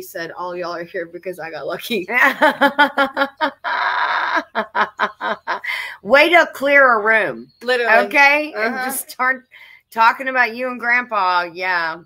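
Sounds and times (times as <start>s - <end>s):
women laughing hard: 2.2s - 5.7s.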